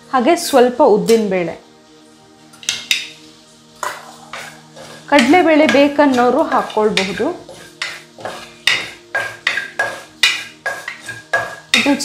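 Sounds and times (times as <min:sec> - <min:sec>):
spatula scraping seeds in metal pan: 0:02.6 - 0:12.0.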